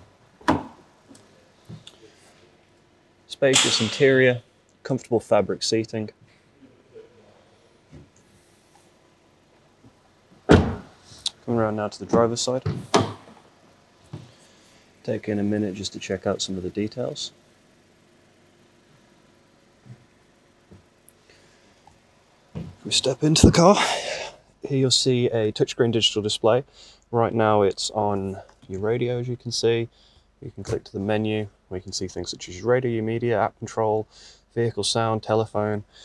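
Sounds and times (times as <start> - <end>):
faint background hum and hiss: 0.0 - 36.0.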